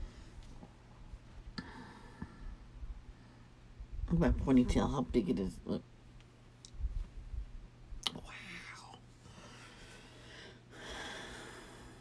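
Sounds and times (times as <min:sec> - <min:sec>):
steady low hum: 0:00.0 - 0:12.0
woman whispering: 0:08.1 - 0:09.1.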